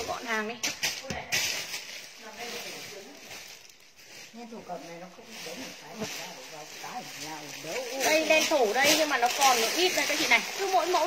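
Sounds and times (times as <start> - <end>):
clothing and packaging rustling: 0.0 - 11.0.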